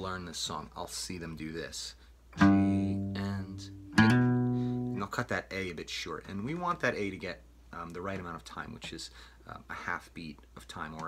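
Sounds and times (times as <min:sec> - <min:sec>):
acoustic guitar single notes: 0:02.4 - 0:05.1.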